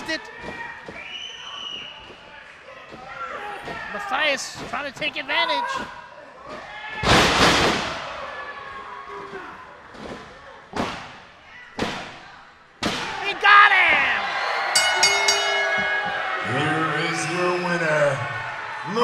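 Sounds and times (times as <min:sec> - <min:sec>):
crowd noise: 0:00.0 - 0:19.0
rapid ringing tone: 0:14.8 - 0:16.8.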